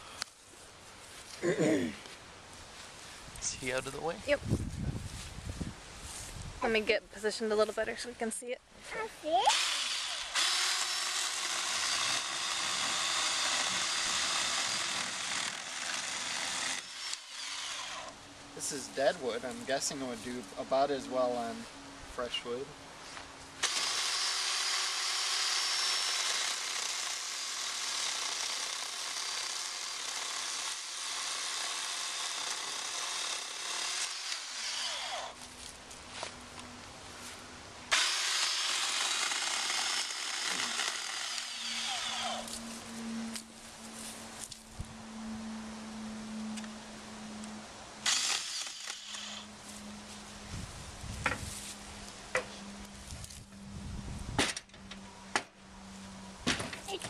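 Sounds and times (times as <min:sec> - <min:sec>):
electric chainsaw cutting log: 0:09.4 - 0:18.2, 0:23.6 - 0:35.5, 0:37.9 - 0:42.7, 0:48.0 - 0:49.6.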